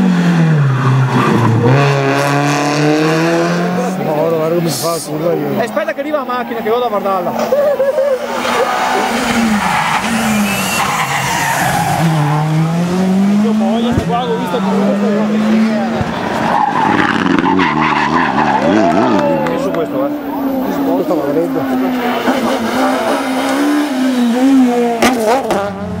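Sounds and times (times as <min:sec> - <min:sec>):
rally car engines at full throttle: 0:00.0 - 0:26.0.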